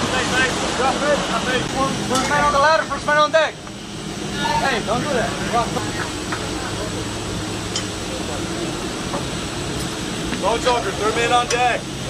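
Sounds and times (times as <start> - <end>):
marine engines rumbling: 0.0 - 12.0.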